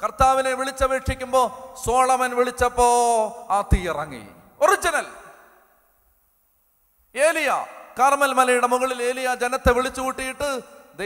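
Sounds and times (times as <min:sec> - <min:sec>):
man speaking into a microphone: 0:00.0 - 0:05.4, 0:07.1 - 0:11.0.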